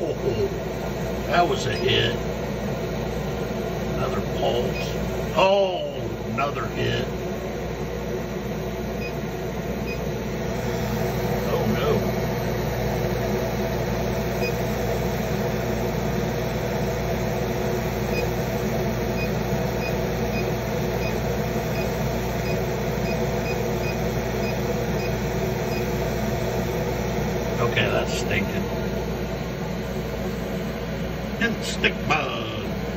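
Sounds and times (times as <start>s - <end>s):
laser engraver humming: 0.0s - 32.9s
low fan tones: 0.0s - 32.9s.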